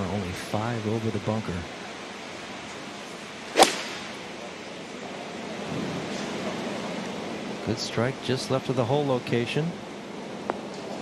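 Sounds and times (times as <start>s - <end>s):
steady outdoor hiss: 0.0s - 11.0s
golf club striking ball: 3.6s - 4.3s.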